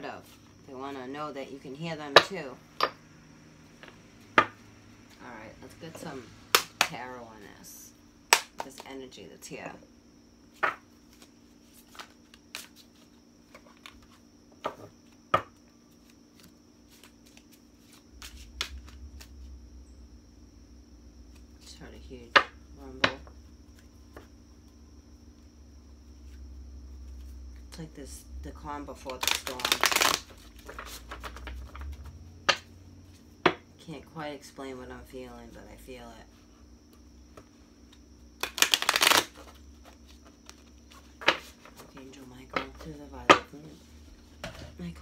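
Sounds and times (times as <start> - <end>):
rapid card shuffling: 11.0 - 14.2, 15.9 - 19.4, 29.0 - 32.1, 37.9 - 42.0
cards clicking and tapping: 29.0 - 32.7, 37.3 - 41.9
sharp card snaps: 29.2 - 30.3, 38.4 - 39.4.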